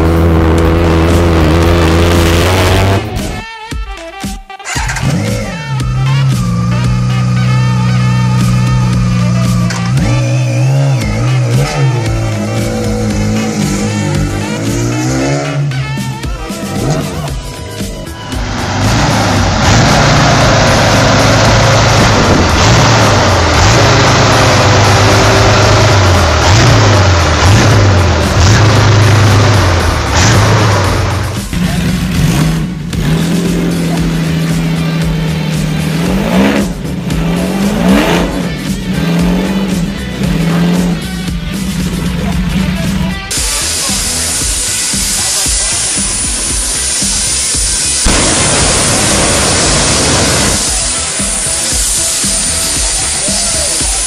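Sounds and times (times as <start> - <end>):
loud rough motorcycle engine: 0.0 - 3.4, 4.7 - 54.0
motorcycle engine revving: 0.0 - 3.4, 4.6 - 54.0.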